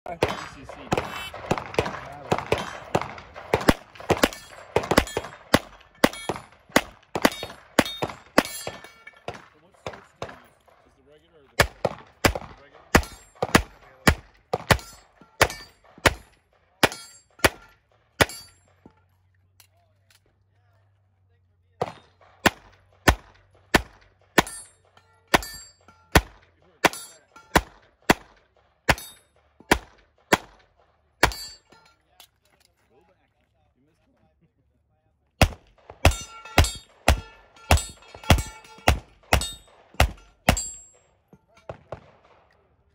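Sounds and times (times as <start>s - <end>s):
handgun shots: 0.1s - 10.5s, 35.4s - 40.9s
bullets clanging on steel targets: 0.1s - 10.9s, 11.5s - 20.4s, 21.8s - 32.8s, 35.4s - 42.4s.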